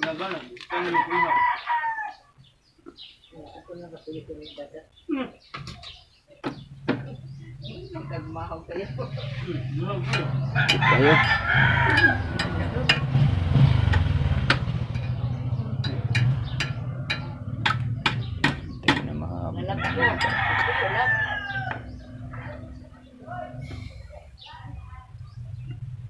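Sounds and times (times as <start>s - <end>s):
rooster crowing: 0.8s - 2.4s, 10.4s - 12.7s, 19.6s - 22.7s.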